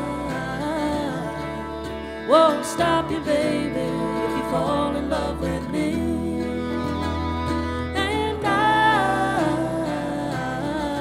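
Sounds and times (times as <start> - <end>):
bluegrass band playing: 0.0 - 11.0.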